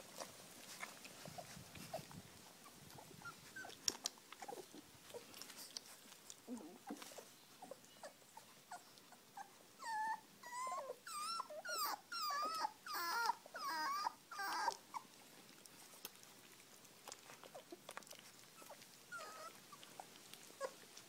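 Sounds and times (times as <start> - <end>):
puppy whimpering and squealing: 0.2 - 15.2, 17.4 - 20.8.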